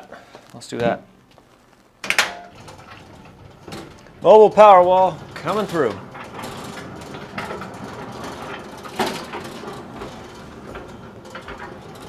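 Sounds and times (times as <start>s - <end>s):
metal cabinet rolling on concrete: 2.1s - 12.0s.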